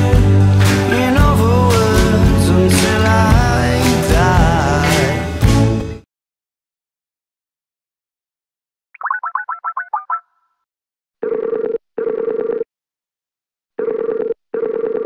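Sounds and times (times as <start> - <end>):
call ringtone double rings: 9.0 - 10.5, 13.8 - 15.0.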